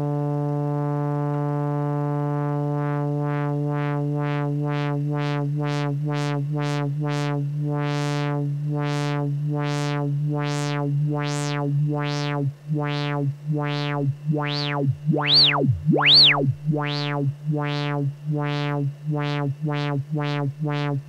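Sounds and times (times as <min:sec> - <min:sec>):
sawtooth synthesizer note with filter sweep: 0:06.0 - 0:21.0.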